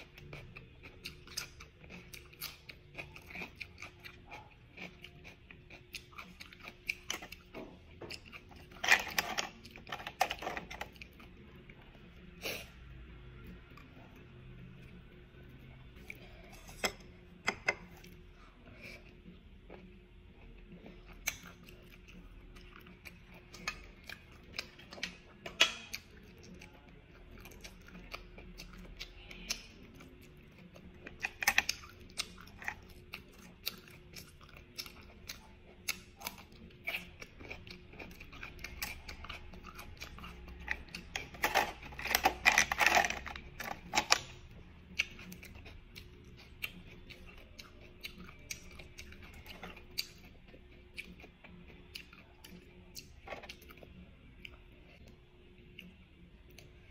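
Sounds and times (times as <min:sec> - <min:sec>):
soft chewing: 0:00.0 - 0:56.9.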